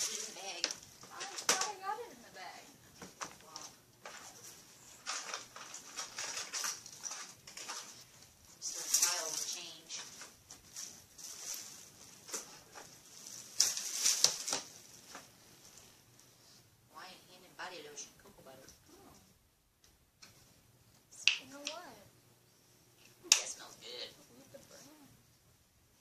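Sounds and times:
rummaging in plastic bin: 0:00.0 - 0:02.3, 0:02.9 - 0:15.3.

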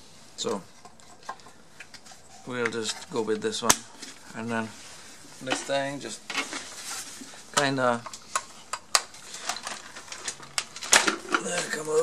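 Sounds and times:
hard plastic parts clicking: 0:07.6 - 0:12.0.

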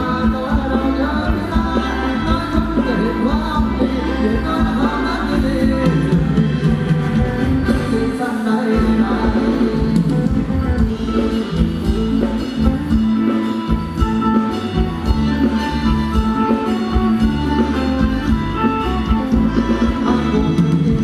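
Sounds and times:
person singing: 0:00.0 - 0:11.6, 0:13.2 - 0:21.0
live band dance music: 0:00.0 - 0:21.0.

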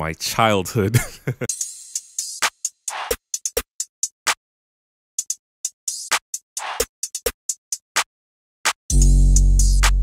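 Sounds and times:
drum machine hi-hats and claps: 0:01.5 - 0:04.4, 0:05.2 - 0:08.1, 0:08.7 - 0:10.0.

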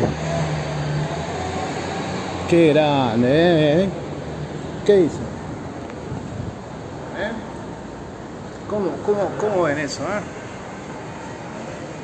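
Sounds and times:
street traffic road noise: 0:00.0 - 0:12.0.

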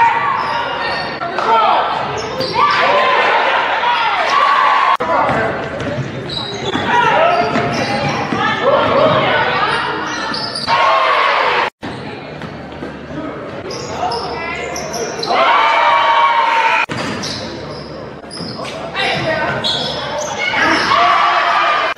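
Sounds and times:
sneakers squeaking on hardwood: 0:05.8 - 0:10.7, 0:16.9 - 0:21.0.

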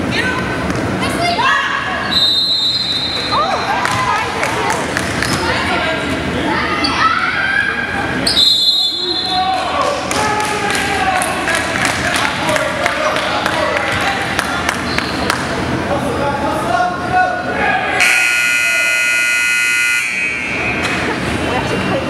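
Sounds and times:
voices in a hall: 0:00.0 - 0:22.0
scoreboard buzzer: 0:18.0 - 0:20.6.

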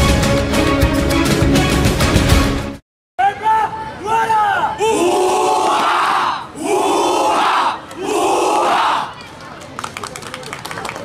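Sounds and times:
boys shouting in unison: 0:04.2 - 0:09.1.

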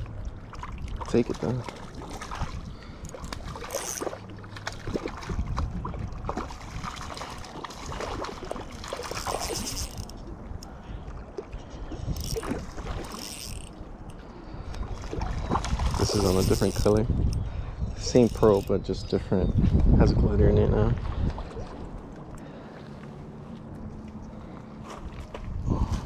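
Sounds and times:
water splashing at shoreline: 0:00.0 - 0:10.1, 0:11.0 - 0:16.9.

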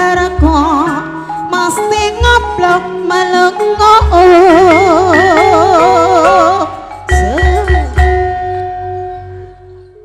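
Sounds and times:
gamelan final stroke: 0:04.6 - 0:10.0.

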